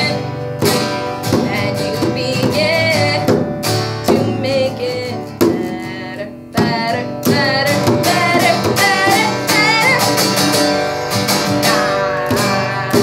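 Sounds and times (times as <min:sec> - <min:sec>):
acoustic guitar strumming: 0:00.0 - 0:13.0
person singing with vibrato: 0:00.0 - 0:13.0.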